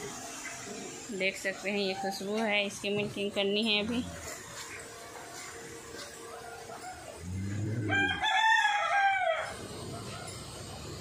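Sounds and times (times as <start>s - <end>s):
rooster crowing: 6.4s - 9.6s.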